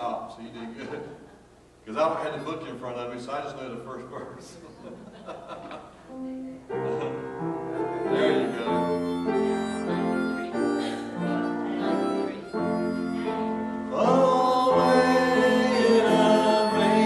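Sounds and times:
instrumental music held chords: 6.7 - 17.0.

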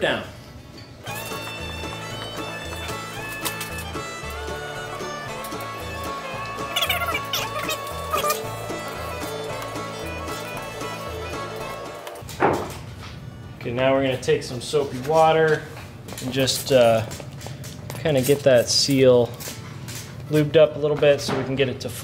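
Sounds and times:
music with held tones and bass beat: 1.2 - 12.0.

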